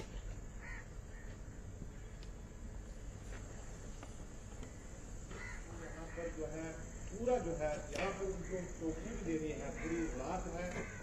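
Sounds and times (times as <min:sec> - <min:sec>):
low steady hum: 0:00.0 - 0:11.0
crow cawing: 0:00.5 - 0:01.7, 0:04.7 - 0:06.8, 0:08.0 - 0:11.0.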